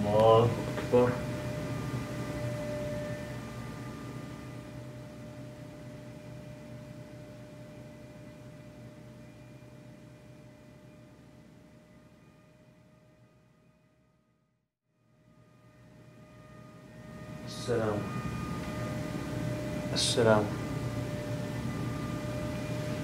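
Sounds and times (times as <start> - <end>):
low hum: 0.0 - 13.8, 15.1 - 23.0
soft droning background music: 0.0 - 23.0.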